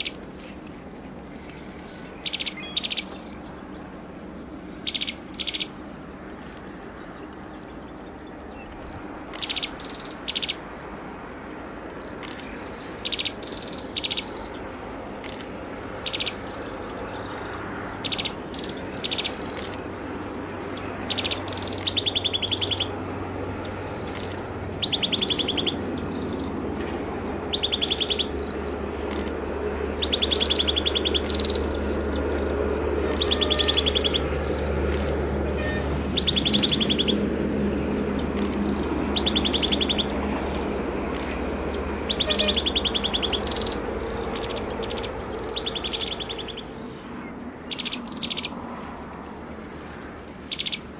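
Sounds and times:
bird pulsed calls: 0:00.0 - 0:00.6, 0:01.3 - 0:04.0, 0:04.7 - 0:05.8, 0:07.1 - 0:10.6, 0:12.0 - 0:15.4, 0:16.0 - 0:19.8, 0:20.8 - 0:23.0, 0:24.0 - 0:25.8, 0:27.5 - 0:28.4, 0:30.0 - 0:31.7, 0:33.0 - 0:34.4, 0:36.2 - 0:37.2, 0:38.4 - 0:40.2, 0:42.0 - 0:48.6, 0:50.5 - 0:50.9.

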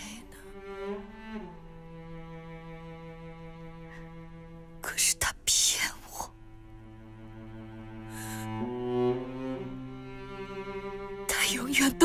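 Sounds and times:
woman speaking in hushed voice: 0:00.0 - 0:00.4, 0:04.8 - 0:06.3, 0:11.3 - 0:12.0.

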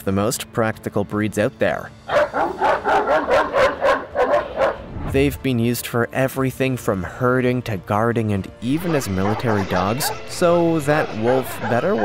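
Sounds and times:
large dog barking: 0:02.1 - 0:04.9, 0:08.8 - 0:10.3, 0:11.1 - 0:12.0.

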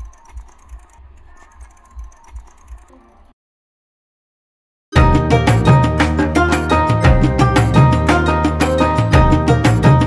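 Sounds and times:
bicycle freewheel ticking: 0:00.0 - 0:03.1.

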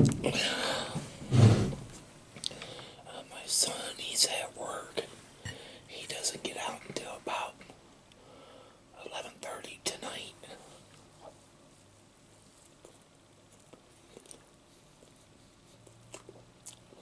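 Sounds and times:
man whispering: 0:03.0 - 0:05.1, 0:05.9 - 0:07.7, 0:08.9 - 0:10.8.

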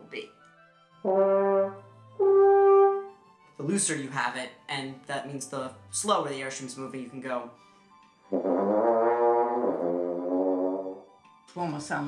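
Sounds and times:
low french horn notes: 0:01.0 - 0:03.1, 0:08.3 - 0:11.0.

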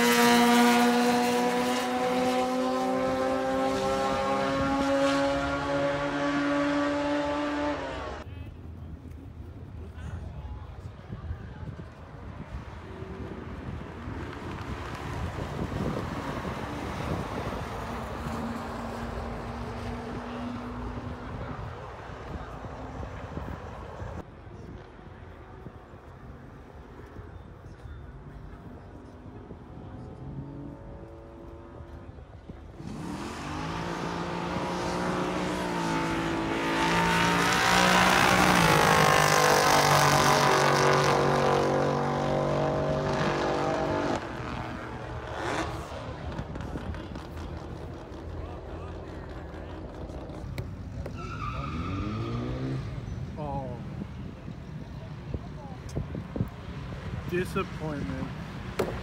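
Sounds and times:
engine revving: 0:00.0 - 0:08.2, 0:32.7 - 0:50.7, 0:51.6 - 0:53.8
drag cars accelerating: 0:00.0 - 0:08.3, 0:12.6 - 0:24.2, 0:29.4 - 0:59.0.

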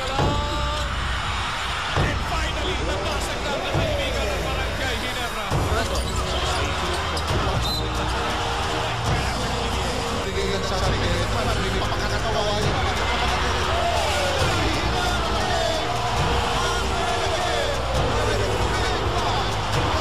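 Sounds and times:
arena crowd noise: 0:00.0 - 0:20.0
arena music: 0:00.0 - 0:20.0.

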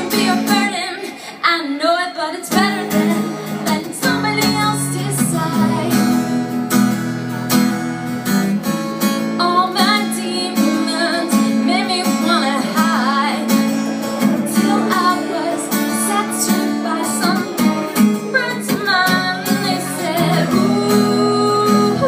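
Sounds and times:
strummed acoustic guitar: 0:00.0 - 0:01.4, 0:02.4 - 0:22.0
woman singing: 0:00.0 - 0:06.6, 0:09.4 - 0:22.0.

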